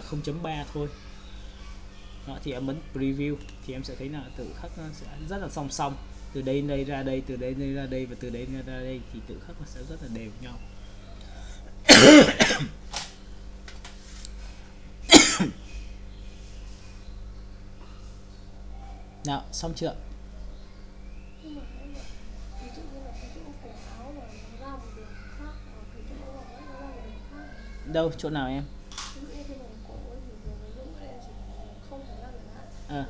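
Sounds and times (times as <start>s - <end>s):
quiet voices talking: 0.0s - 12.8s, 18.8s - 33.0s
low electrical hum: 0.0s - 33.0s
person coughing: 11.9s - 12.7s, 15.1s - 15.6s.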